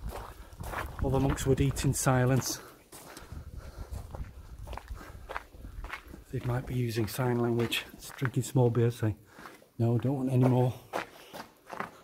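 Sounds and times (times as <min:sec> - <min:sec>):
footsteps walking: 0:00.0 - 0:12.0.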